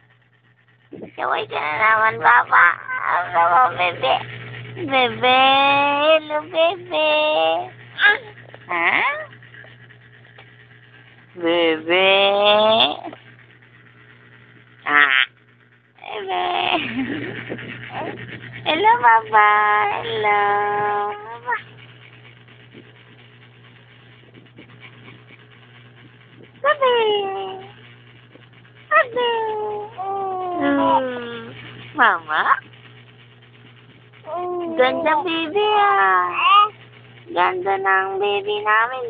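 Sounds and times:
woman cooing baby talk: 0:29.0 - 0:31.6.

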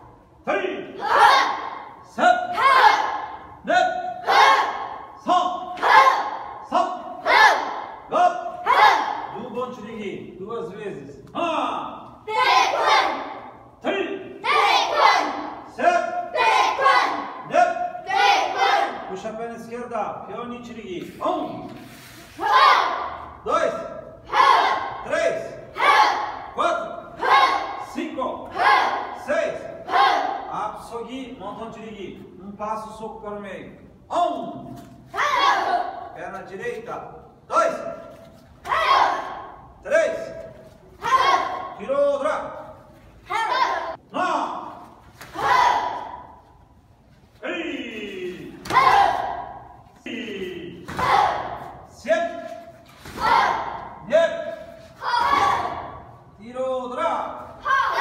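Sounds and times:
people shouting in echoing hall: 0:00.0 - 0:09.7, 0:11.4 - 0:19.3, 0:22.3 - 0:30.8, 0:34.1 - 0:36.2, 0:37.2 - 0:46.8, 0:47.4 - 0:58.0
children shouting together: 0:01.0 - 0:01.9, 0:02.5 - 0:03.4, 0:12.3 - 0:13.5, 0:35.2 - 0:36.1, 0:38.6 - 0:39.6, 0:41.0 - 0:41.8, 0:43.3 - 0:44.0, 0:45.3 - 0:46.3, 0:53.2 - 0:54.0, 0:55.0 - 0:56.0, 0:57.6 - 0:58.0.

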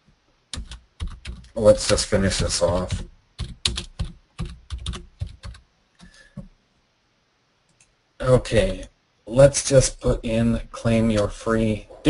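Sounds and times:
typing on computer keyboard: 0:00.5 - 0:06.2.

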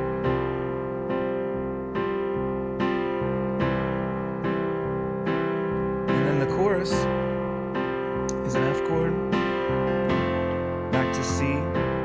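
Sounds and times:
keyboard playing piano chords: 0:00.0 - 0:12.0.

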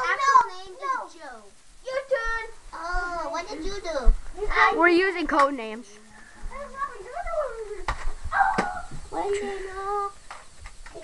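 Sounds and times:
children talking: 0:00.0 - 0:10.2.

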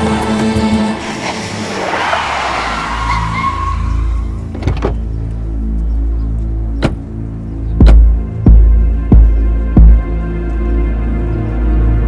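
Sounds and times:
vehicle driving up and slowing: 0:00.0 - 0:05.2
dramatic film score bass pulse: 0:06.6 - 0:12.0.

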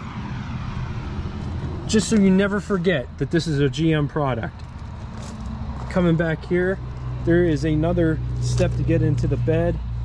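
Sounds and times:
low rushing noise: 0:00.0 - 0:03.3.

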